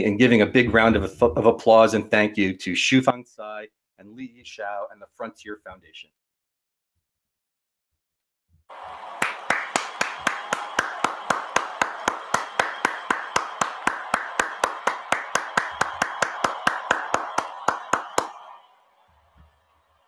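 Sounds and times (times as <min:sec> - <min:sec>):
person clapping: 0:08.7 - 0:18.5
crowd clapping: 0:08.7 - 0:18.8.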